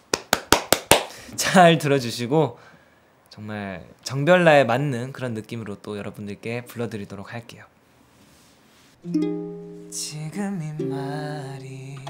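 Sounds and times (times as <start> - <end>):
ukulele strumming: 9.0 - 12.0.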